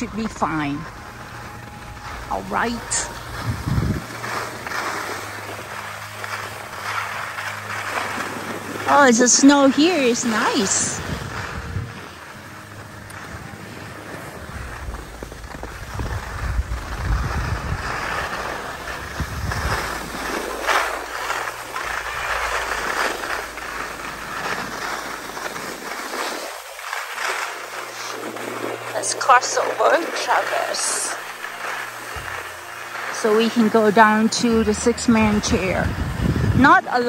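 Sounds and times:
wind buffeting microphone: 0.0 - 4.6, 8.4 - 26.1, 32.1 - 37.0
skis scraping over snow: 0.0 - 37.0.

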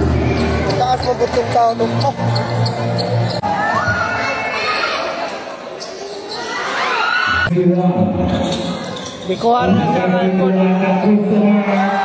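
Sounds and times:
voices in echoing hall: 0.0 - 12.0
sneakers squeaking: 0.2 - 4.5, 5.3 - 7.5, 8.2 - 9.6.

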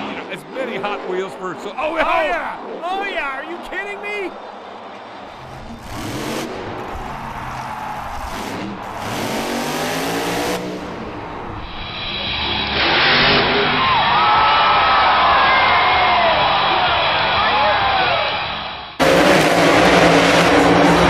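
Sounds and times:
crowd cheering and whooping: 3.8 - 10.3, 12.6 - 18.6
monster truck engine revving: 5.3 - 14.4, 19.0 - 21.0.

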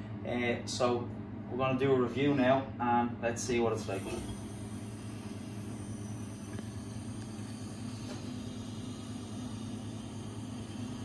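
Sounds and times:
beer pouring hiss: 3.8 - 11.0.

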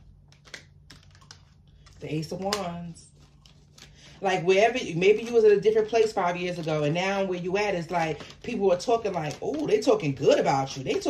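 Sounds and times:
low steady hum: 0.0 - 11.0
cards clicking and tapping: 0.2 - 2.7.

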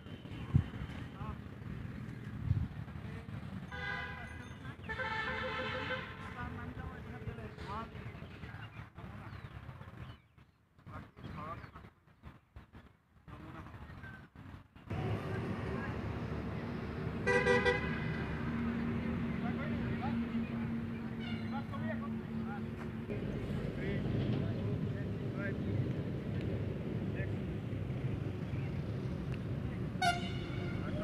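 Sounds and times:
vehicle horn tooting: 3.7 - 6.4, 17.2 - 18.3, 30.0 - 31.0
low outdoor background hum: 13.4 - 31.0.

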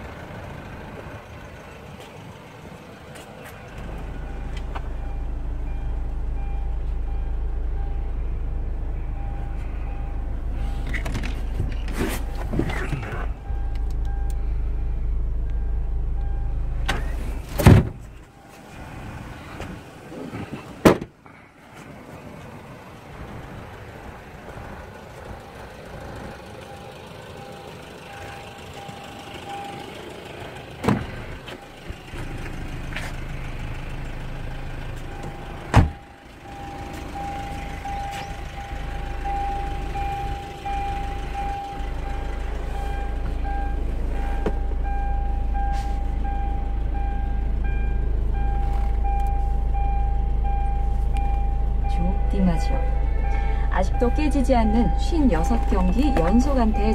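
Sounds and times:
low rumble: 3.6 - 19.9
car door warning chime: 26.5 - 30.0, 35.0 - 56.9.

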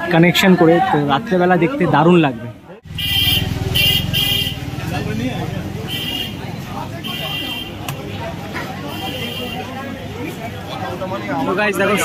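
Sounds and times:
vehicle engine rumbling: 2.8 - 9.0.

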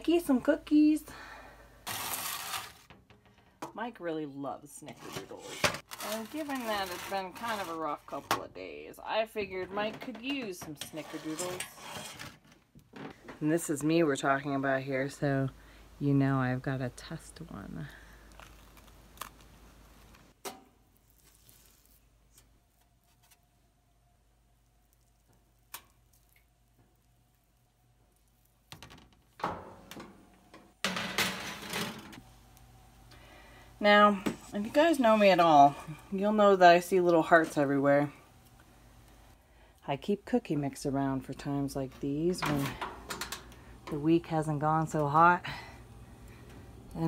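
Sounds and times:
spatula scraping metal baking sheet: 1.9 - 2.9, 4.9 - 8.3, 9.8 - 12.4, 34.4 - 36.6
faint steady hum: 11.6 - 21.2, 29.4 - 47.0.

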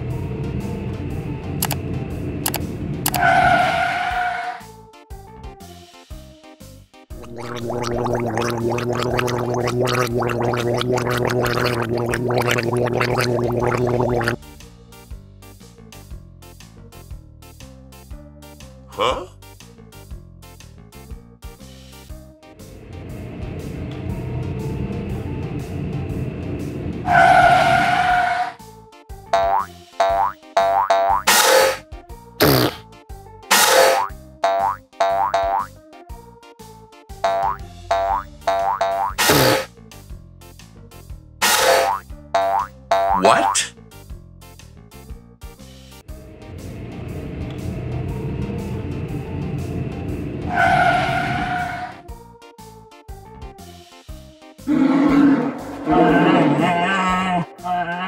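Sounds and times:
background music: 0.0 - 51.0, 51.6 - 58.0
springy cartoon boings: 7.2 - 14.4, 29.4 - 31.8, 33.5 - 35.7, 37.2 - 39.7, 41.4 - 43.7
cartoon bear roaring: 54.7 - 57.4.

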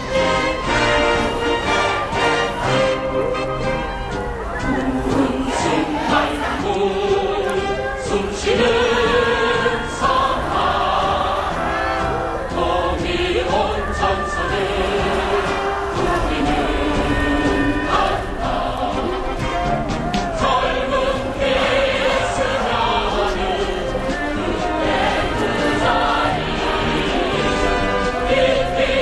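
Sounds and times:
choir singing long notes: 0.0 - 29.0
large outdoor crowd noise: 0.0 - 29.0.

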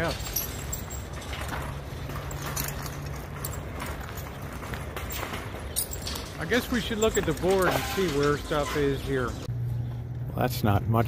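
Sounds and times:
metal cart rattling: 0.0 - 9.5.

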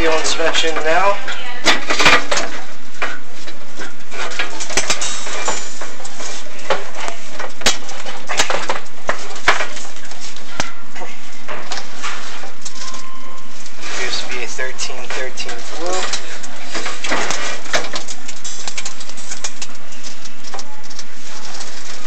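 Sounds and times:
cable knocking and scraping in flue: 0.0 - 22.0.

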